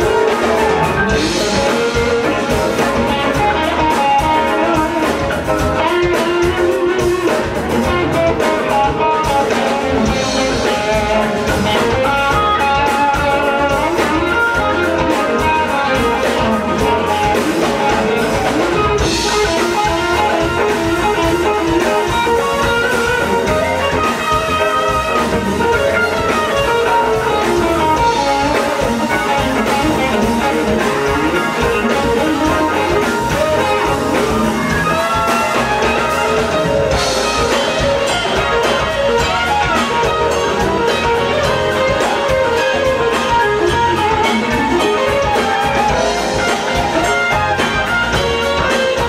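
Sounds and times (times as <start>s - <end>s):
electric guitar melody: 0.0s - 49.0s
live band music: 0.0s - 49.0s.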